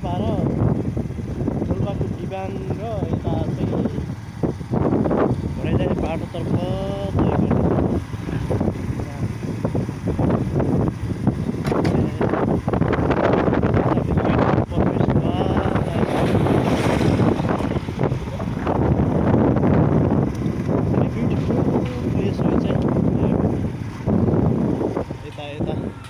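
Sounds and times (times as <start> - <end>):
outdoor street ambience: 0.0 - 26.0
wind buffeting microphone: 0.0 - 26.0.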